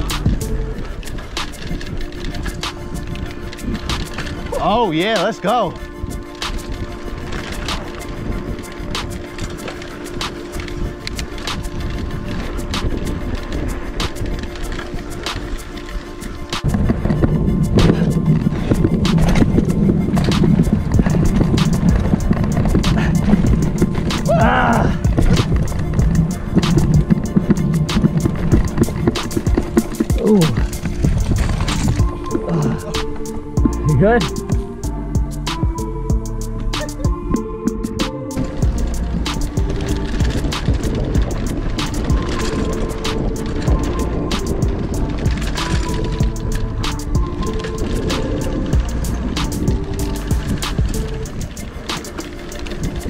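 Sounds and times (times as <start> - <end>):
tyre rumble on dirt trail: 0.0 - 36.3, 36.9 - 53.0
bike rattling and clicking: 0.0 - 53.0
wind on camera: 5.7 - 34.7.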